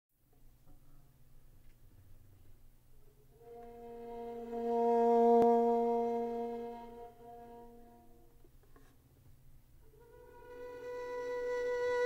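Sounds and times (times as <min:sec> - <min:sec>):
muted violin and cello notes: 0:03.4 - 0:08.2, 0:09.9 - 0:12.0.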